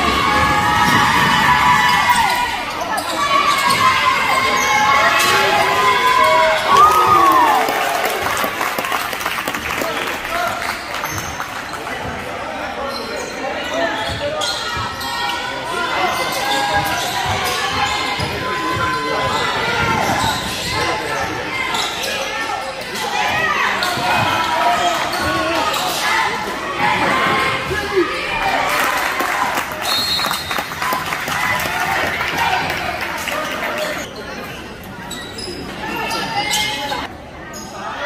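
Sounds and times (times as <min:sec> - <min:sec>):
voices echoing in a hall: 0:00.0 - 0:38.0.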